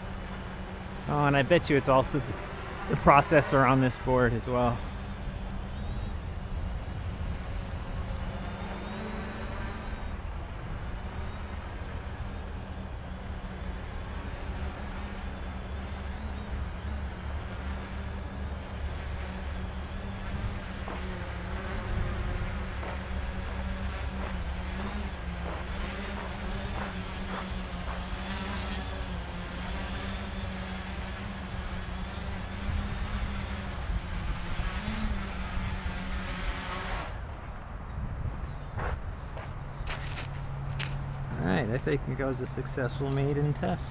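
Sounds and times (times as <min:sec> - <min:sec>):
drone motors buzzing: 0:00.0 - 0:37.4.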